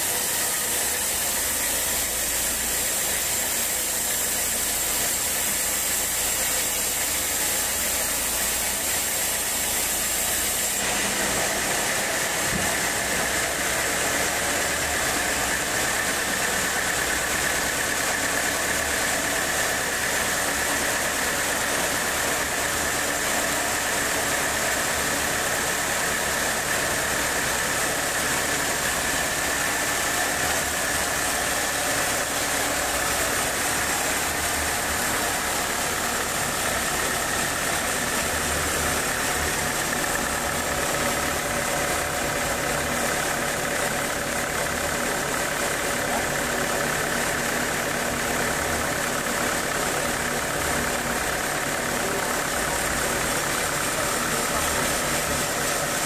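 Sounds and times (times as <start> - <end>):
band sawmill sawing log: 0.0 - 56.0.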